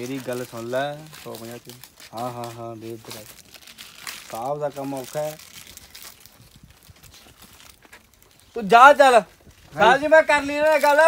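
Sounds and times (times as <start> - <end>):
cloth rustling: 0.0 - 11.0
man speaking: 8.6 - 11.0.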